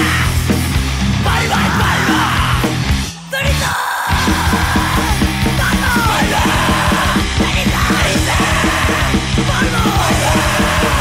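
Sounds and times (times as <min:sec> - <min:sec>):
shouted vocals: 0:00.0 - 0:00.5, 0:01.2 - 0:11.0
bass guitar: 0:00.0 - 0:11.0
distorted guitars: 0:00.0 - 0:11.0
fast drumming: 0:00.0 - 0:11.0.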